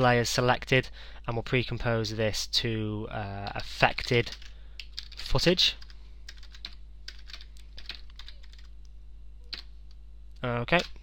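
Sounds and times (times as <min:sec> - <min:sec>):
computer keyboard typing: 0:03.4 - 0:05.2, 0:05.8 - 0:08.7, 0:09.5 - 0:09.7.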